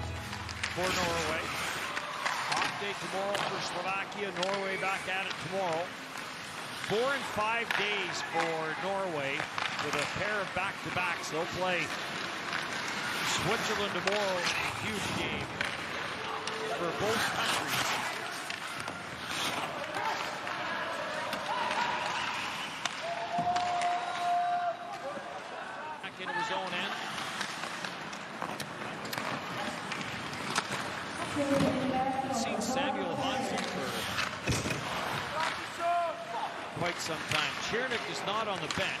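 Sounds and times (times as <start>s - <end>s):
puck and stick clacks: 0.0s - 25.5s, 26.2s - 32.0s, 32.7s - 36.0s, 36.6s - 39.0s
skates and sticks on ice: 0.0s - 39.0s.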